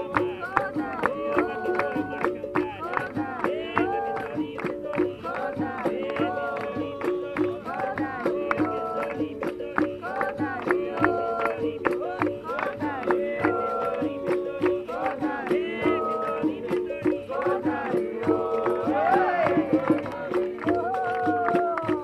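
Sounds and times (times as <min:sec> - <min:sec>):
voices singing: 0:00.0 - 0:22.0.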